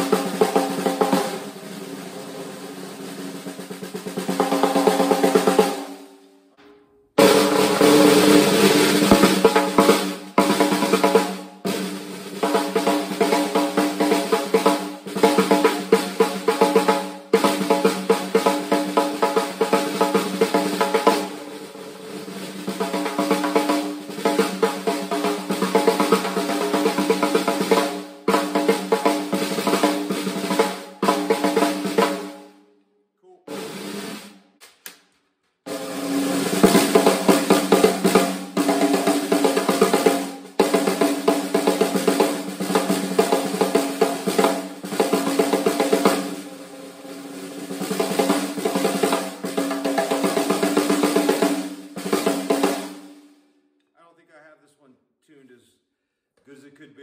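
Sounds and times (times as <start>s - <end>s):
snare drum strokes and rolls: 0.0s - 6.2s, 7.2s - 32.6s, 33.5s - 35.0s, 35.7s - 53.3s.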